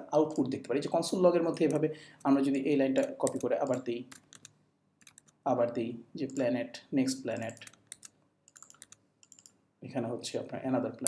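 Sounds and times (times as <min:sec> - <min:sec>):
computer keyboard clicks: 0:02.5 - 0:05.4, 0:07.4 - 0:09.5.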